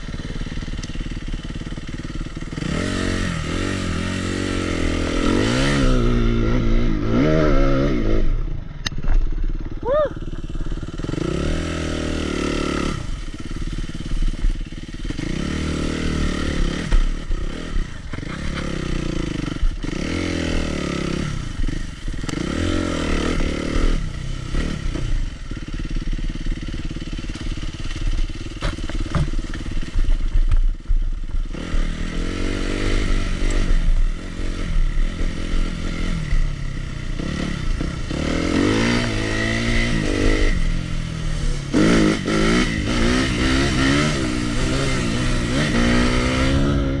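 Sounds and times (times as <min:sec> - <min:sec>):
motorcycle engine revving: 0:00.0 - 0:47.0.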